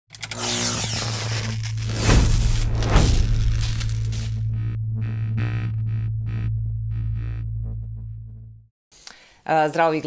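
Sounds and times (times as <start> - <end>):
neon sign buzzing hum: 0.2 - 8.6
electric crackles: 0.4 - 5.7.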